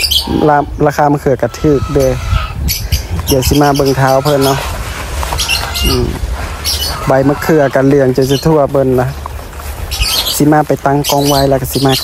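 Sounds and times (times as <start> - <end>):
low call-like sound: 0.0 - 10.5
steady low rumble: 0.0 - 12.0
high bird chirps: 1.9 - 12.0.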